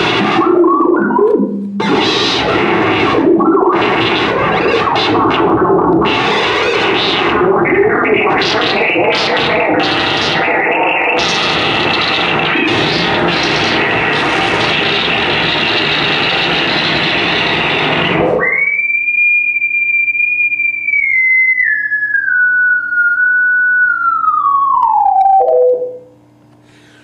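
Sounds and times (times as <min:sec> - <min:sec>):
noisy electronic texture: 0:00.0 - 0:18.8, 0:21.6 - 0:26.1
whistle-like tone sliding down: 0:18.3 - 0:25.8.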